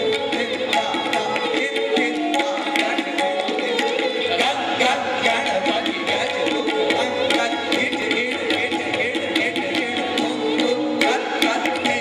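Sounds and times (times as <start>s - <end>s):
sarangi melody: 0.0s - 12.0s
tabla rapid strokes: 0.0s - 12.0s.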